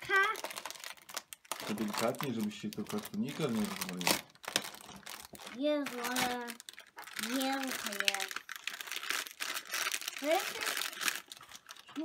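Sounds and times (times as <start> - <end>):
plastic foil packet crinkling: 0.0 - 12.0.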